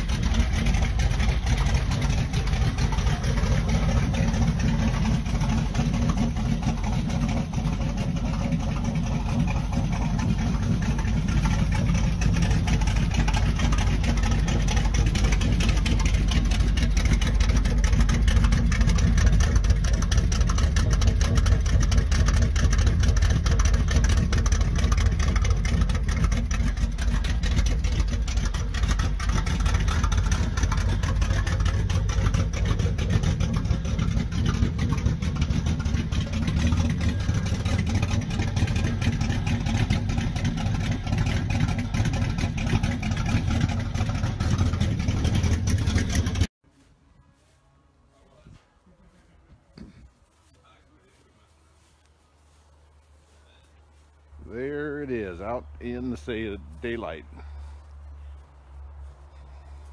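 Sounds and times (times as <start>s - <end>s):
pickup engine idling: 0.0s - 46.5s, 49.6s - 59.9s.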